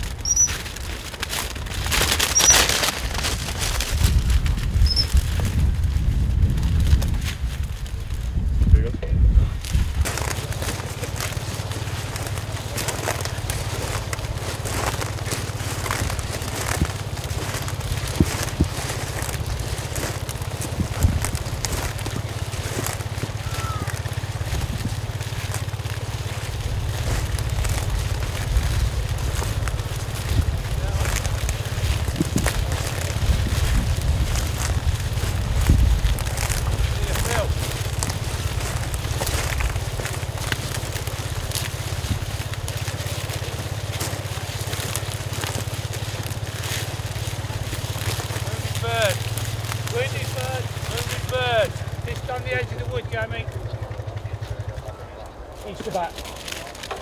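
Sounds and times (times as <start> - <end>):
wind rumbling on microphone: 0.0 - 57.0
short high chirps: 0.2 - 0.6.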